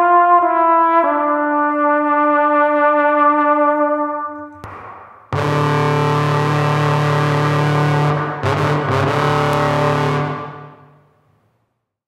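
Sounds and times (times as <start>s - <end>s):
trombone with fuzz effects: 5.3s - 11.0s.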